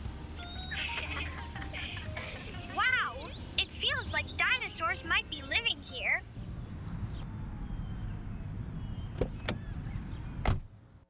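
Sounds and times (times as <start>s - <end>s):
car rumbling in motion: 0.8s - 11.0s.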